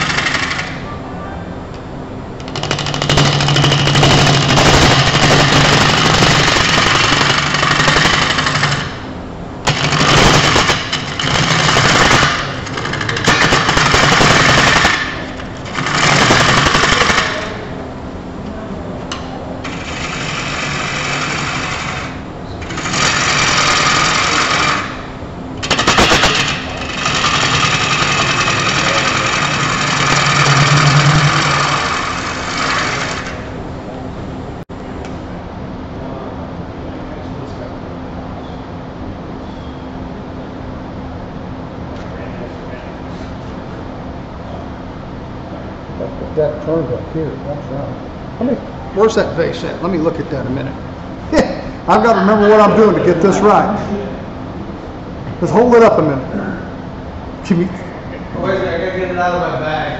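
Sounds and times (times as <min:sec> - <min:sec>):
lathe motor humming: 0:00.0 - 0:00.8, 0:19.6 - 0:33.6
lathe tool scraping wood: 0:19.7 - 0:25.0, 0:26.4 - 0:33.4.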